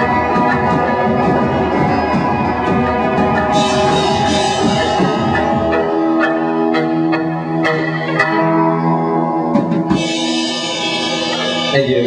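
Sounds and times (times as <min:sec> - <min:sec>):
drum hits: 0:00.0 - 0:05.8
held electric guitar notes: 0:00.0 - 0:12.0.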